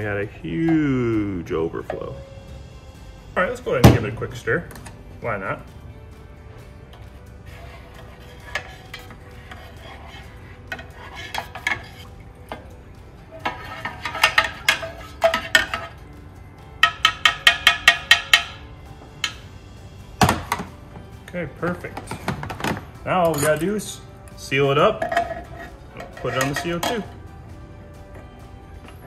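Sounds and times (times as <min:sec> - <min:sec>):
spatula clinking against metal keg: 0:08.0 - 0:12.7, 0:13.3 - 0:16.0, 0:16.8 - 0:18.6, 0:23.1 - 0:23.9, 0:24.7 - 0:27.2.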